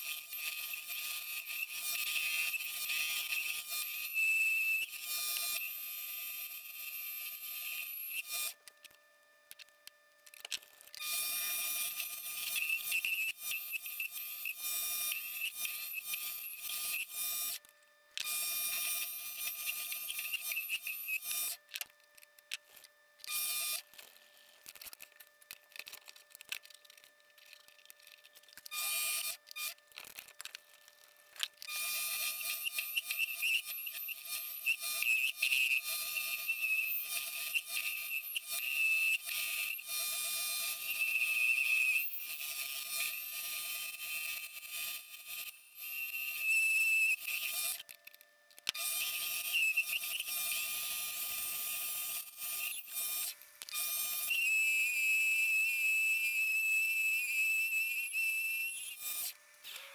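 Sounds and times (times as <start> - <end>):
high-pitched cutting whine and hiss: 0.0 - 8.6, 11.1 - 17.6, 18.3 - 21.6, 31.7 - 47.8, 48.8 - 59.9
lathe drive tones: 22.7 - 59.9.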